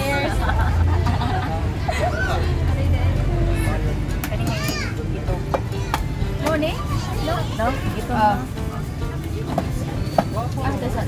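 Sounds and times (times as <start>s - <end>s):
women chattering and laughing: 0.0s - 11.0s.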